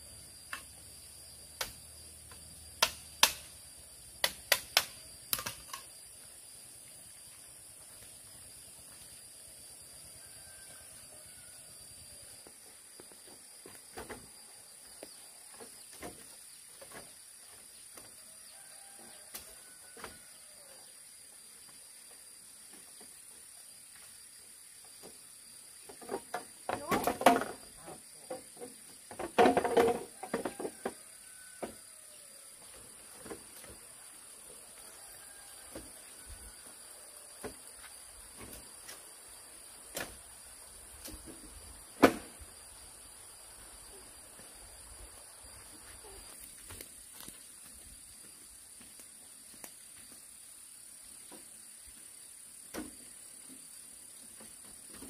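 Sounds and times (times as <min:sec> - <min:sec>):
high insect drone: 0:00.0 - 0:55.0
sharp bamboo knocks: 0:02.8 - 0:03.5, 0:04.2 - 0:05.8, 0:42.0 - 0:42.4
bamboo panel clattering rattle: 0:25.9 - 0:30.5.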